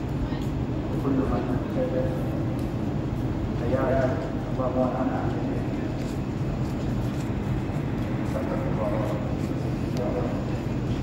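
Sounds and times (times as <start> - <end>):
air conditioner units humming: 0.0 - 11.0
faint voices: 0.0 - 11.0.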